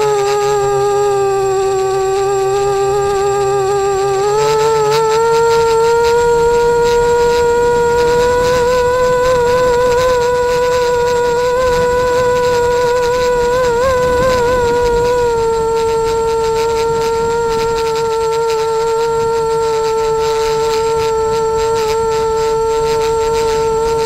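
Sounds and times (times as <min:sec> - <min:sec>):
drone propellers humming: 0:00.0 - 0:24.0.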